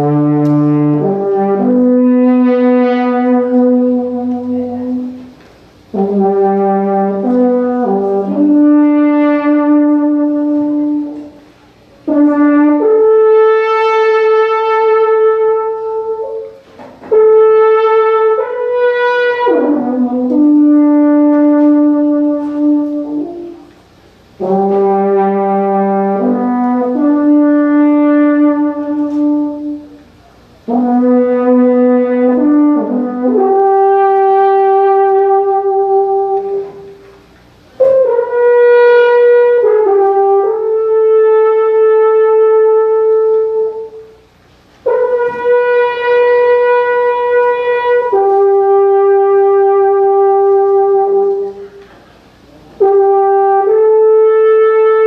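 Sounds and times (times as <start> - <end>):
alphorn melody: 0.0 - 55.0.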